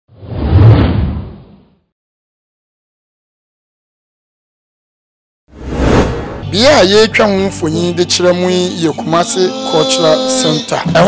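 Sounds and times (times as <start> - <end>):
whoosh with deep rumble: 5.6 - 6.5.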